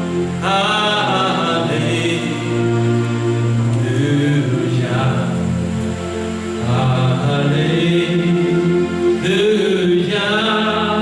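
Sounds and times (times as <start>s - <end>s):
man singing into a microphone: 0.3s - 2.8s, 3.8s - 5.6s, 6.6s - 11.0s.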